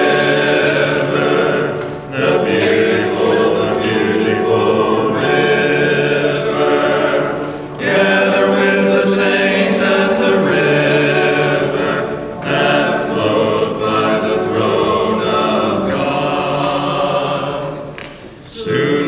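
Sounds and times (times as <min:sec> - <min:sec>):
choir singing sacred piece: 0:00.0 - 0:19.0.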